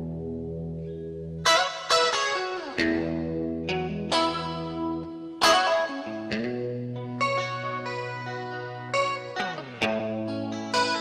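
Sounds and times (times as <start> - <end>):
sharp picked guitar notes: 0.0 - 11.0.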